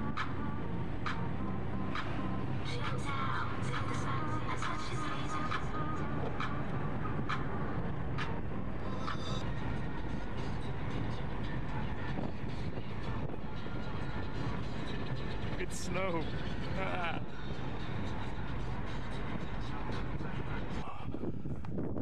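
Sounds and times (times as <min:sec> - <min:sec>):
faint music: 0:00.0 - 0:21.4
car road and engine noise: 0:00.0 - 0:22.0.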